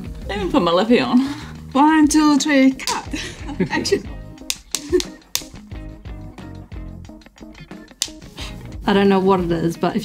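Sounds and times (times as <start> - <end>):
background music: 0.0 - 10.0
sharp clicks: 4.4 - 5.7, 7.8 - 8.3.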